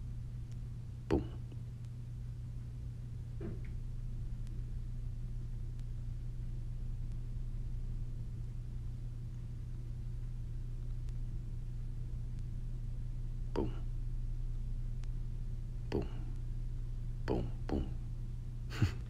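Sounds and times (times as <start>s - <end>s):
low hum: 0.0s - 19.0s
soft murmured vocal sound: 1.0s - 1.8s, 13.4s - 14.1s, 15.8s - 16.6s, 17.2s - 19.0s.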